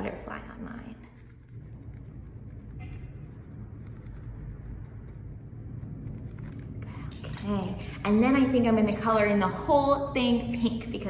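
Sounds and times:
pencil scratching on paper: 1.1s - 6.7s.

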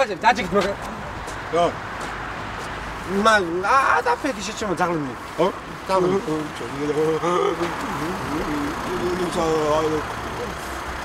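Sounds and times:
men's voices: 0.0s - 10.7s
car engine idling: 5.7s - 11.0s.

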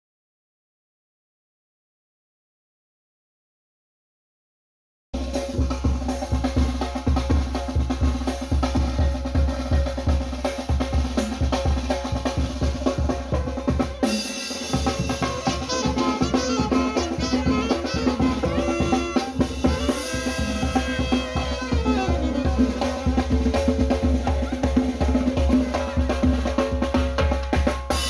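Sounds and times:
bass drum beat: 5.2s - 28.0s
congas: 5.2s - 28.0s
snare drum: 5.2s - 28.0s
saxophones playing tune: 14.0s - 23.6s.

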